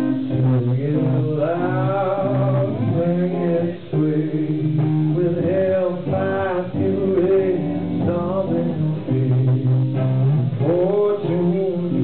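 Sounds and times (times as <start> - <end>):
electric guitar ringing: 0.0 - 12.0
live rock band: 0.0 - 12.0
man singing: 0.0 - 12.0.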